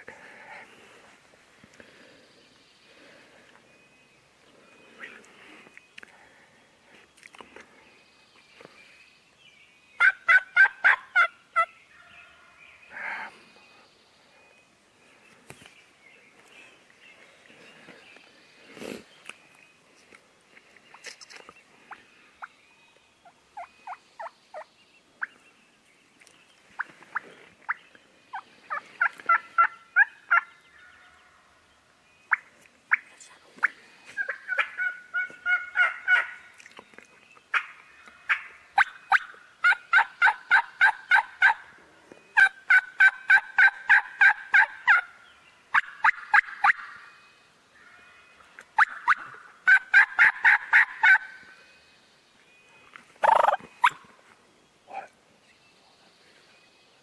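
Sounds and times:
turkeys gobbling: 10.0s - 11.7s, 26.8s - 30.5s, 34.2s - 36.4s, 38.3s - 41.7s, 42.4s - 45.1s, 45.7s - 47.1s, 48.8s - 51.4s, 53.2s - 54.0s.

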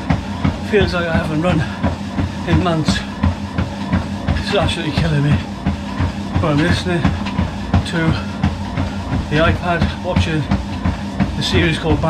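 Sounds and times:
footfalls on treadmill belt: 0.0s - 12.0s
low hum: 0.0s - 12.0s.

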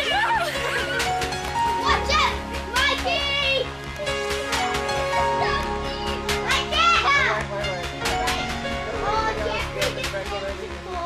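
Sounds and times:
children shouting and squealing: 0.0s - 1.1s
background music with held notes: 0.0s - 11.0s.

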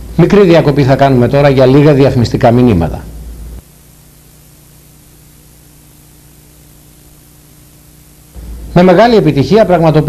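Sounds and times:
low electrical hum: 0.0s - 10.0s
steady hiss: 0.0s - 10.0s.

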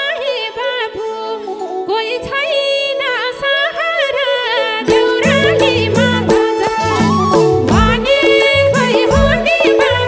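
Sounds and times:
keyboard: 4.3s - 10.0s
hand drum: 4.9s - 10.0s.

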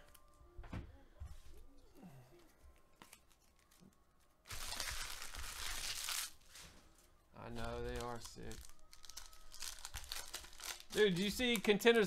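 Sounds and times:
foil wrapper tearing and crinkling: 4.5s - 6.6s, 7.6s - 11.7s.

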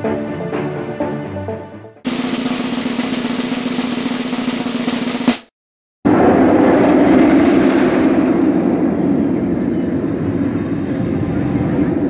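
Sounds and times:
roller coaster wheels rumbling: 6.1s - 12.0s.

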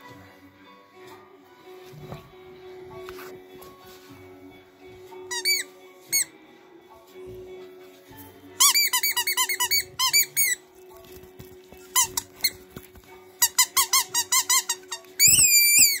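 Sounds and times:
squeaky dog toy squeaking: 5.3s - 6.3s, 8.6s - 10.7s, 11.8s - 12.6s, 13.4s - 16.0s.

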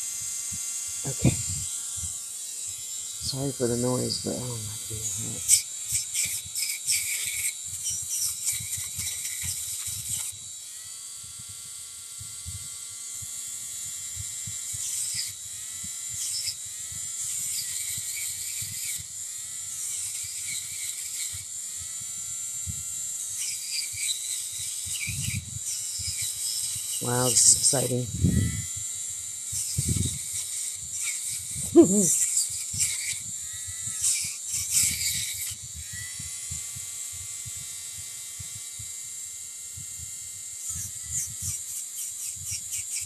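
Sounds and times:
rotary tool motor whine: 0.0s - 43.0s
polishing wheel rasping on wire: 2.6s - 10.3s, 23.3s - 28.4s, 29.6s - 35.9s.

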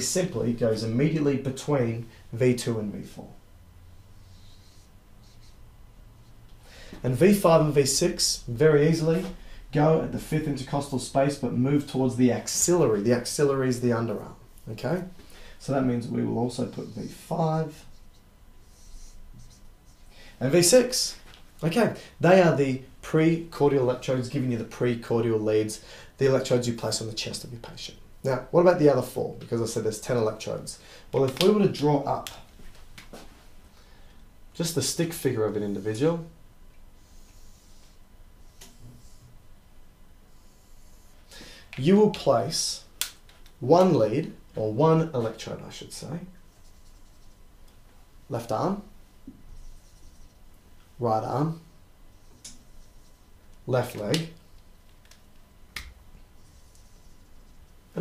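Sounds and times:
marker pen on whiteboard: 4.2s - 10.9s, 11.8s - 22.6s, 31.2s - 33.3s, 37.0s - 39.4s, 40.3s - 47.8s, 48.4s - 50.6s, 51.3s - 55.0s, 55.8s - 58.0s
marker squeaking on whiteboard: 4.3s - 5.6s, 46.5s - 47.4s, 49.5s - 50.4s.

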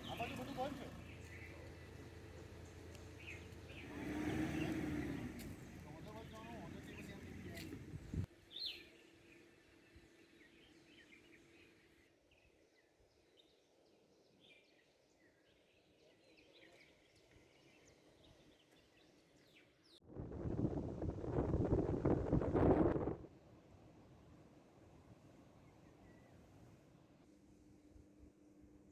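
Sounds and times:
faint birds chirping: 0.0s - 20.0s, 24.9s - 27.2s.

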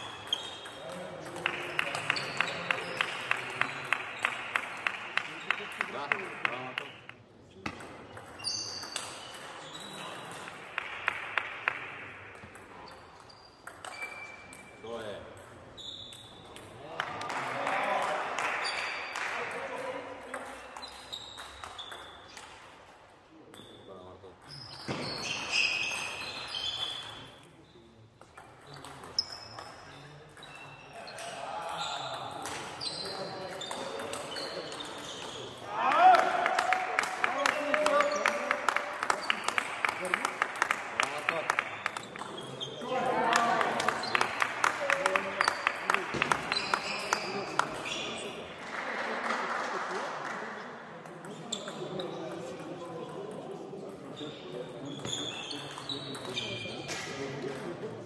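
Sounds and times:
table tennis ball hits: 7.6s - 16.8s.

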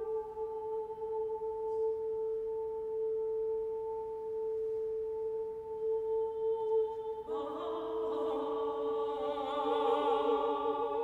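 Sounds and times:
choir holding sustained note: 0.0s - 11.0s.

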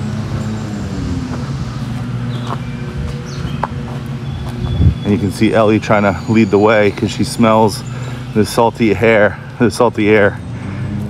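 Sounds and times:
vehicle engine hum: 0.0s - 11.0s.

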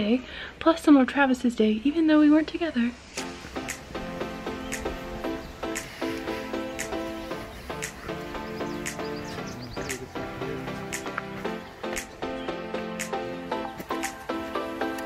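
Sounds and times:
music with steady beat: 3.2s - 15.0s.

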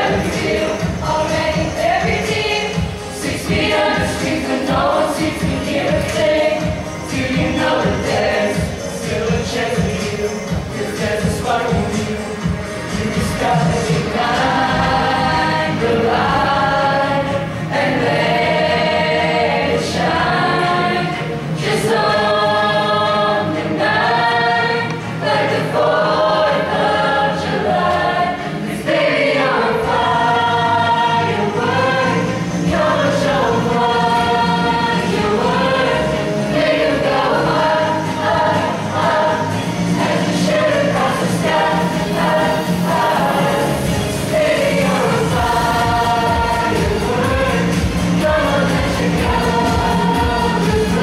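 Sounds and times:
choir singing a pop song: 0.0s - 51.0s.

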